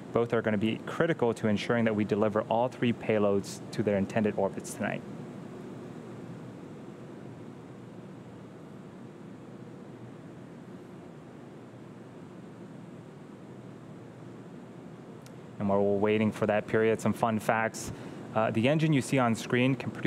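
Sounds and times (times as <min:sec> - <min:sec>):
faint background hiss: 0:00.0 - 0:20.0.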